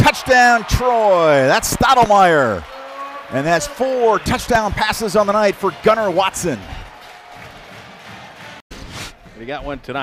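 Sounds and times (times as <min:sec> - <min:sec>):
stadium crowd cheering: 0:00.0 - 0:08.6.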